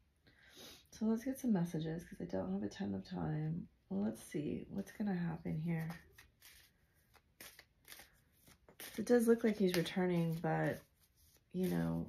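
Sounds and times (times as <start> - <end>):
cards rustling and clicking: 5.8 - 12.0.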